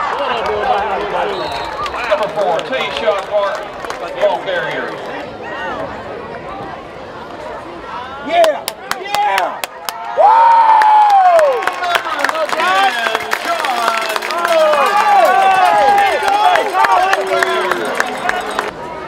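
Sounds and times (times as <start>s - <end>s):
crowd cheering and yelling: 0.0s - 19.0s
sharp claps: 10.8s - 18.7s.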